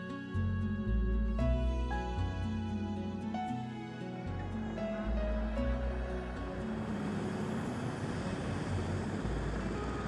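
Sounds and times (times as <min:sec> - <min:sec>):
soft background music: 0:00.0 - 0:10.0
vehicle driving by: 0:04.3 - 0:10.0.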